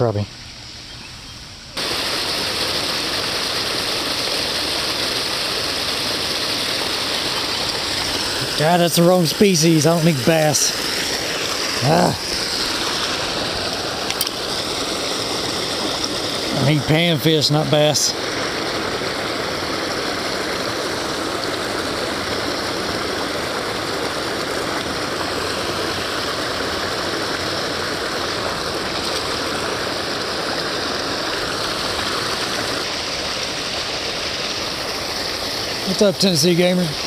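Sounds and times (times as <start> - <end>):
water rushing over stone spillway: 1.8 - 37.0.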